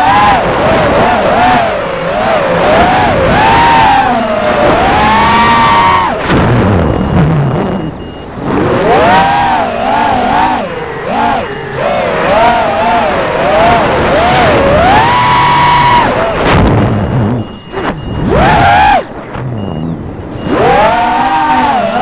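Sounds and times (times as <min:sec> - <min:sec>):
quadcopter motors whining: 0:00.0 - 0:06.2, 0:08.6 - 0:16.6, 0:17.5 - 0:22.0.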